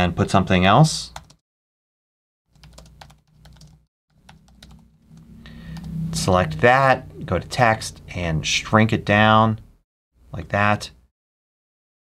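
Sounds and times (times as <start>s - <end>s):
computer keyboard typing: 1.2s - 1.4s, 2.5s - 4.9s.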